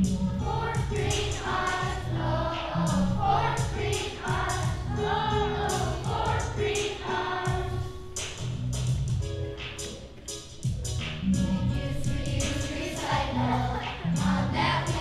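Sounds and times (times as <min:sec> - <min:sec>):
instrumental accompaniment: 0:00.0 - 0:15.0
children's choir singing: 0:00.1 - 0:08.0, 0:11.5 - 0:15.0.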